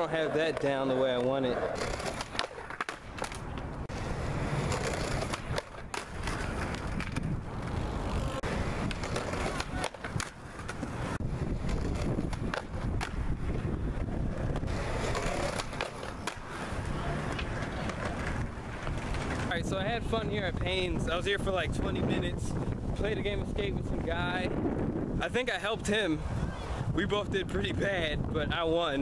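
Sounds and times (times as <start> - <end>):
skateboard wheels rolling on concrete: 0.0 - 29.0
skateboard clacking on ground: 0.1 - 3.8, 4.6 - 13.3, 13.9 - 19.6.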